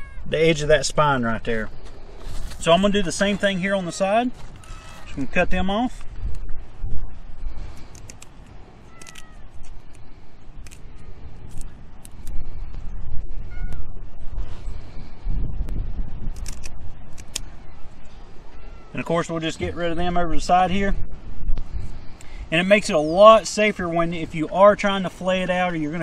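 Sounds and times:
cat meowing: 0.0s - 0.3s, 8.8s - 9.5s, 13.5s - 14.0s, 18.5s - 19.0s
wind on microphone: 0.0s - 26.0s
shears snipping: 7.7s - 12.4s.

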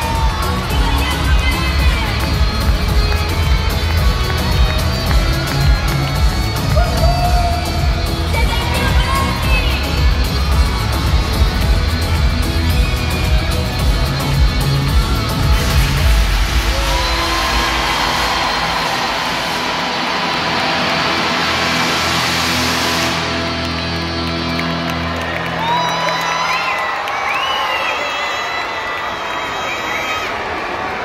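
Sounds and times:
children cheering and shouting: 0.0s - 9.9s, 16.4s - 21.7s, 24.7s - 31.0s
live concert music: 0.0s - 30.4s.

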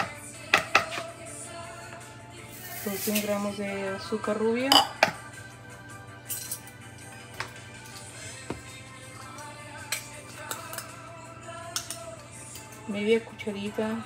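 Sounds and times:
soft background music: 0.0s - 14.0s
kitchen utensils clinking: 2.6s - 3.5s, 6.2s - 6.8s, 9.9s - 10.9s.

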